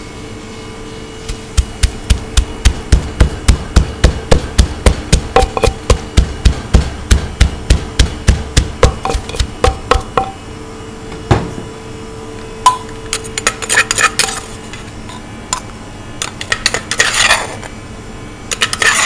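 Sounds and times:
pestle pounding in mortar: 0:01.3 - 0:10.4.

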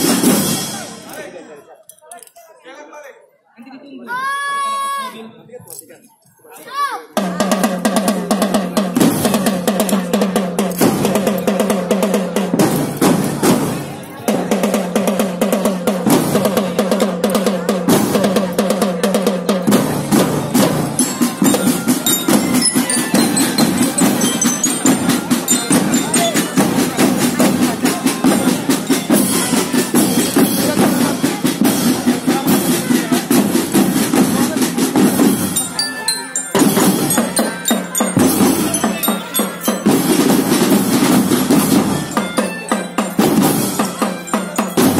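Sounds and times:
marching drum band: 0:00.0 - 0:01.2, 0:07.2 - 0:44.9
pitched melody line: 0:20.0 - 0:33.3, 0:34.0 - 0:44.9.

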